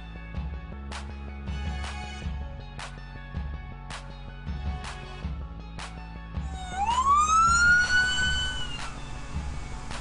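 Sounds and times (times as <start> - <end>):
music with steady beat: 0.0 - 10.0
emergency siren wailing: 6.4 - 9.9.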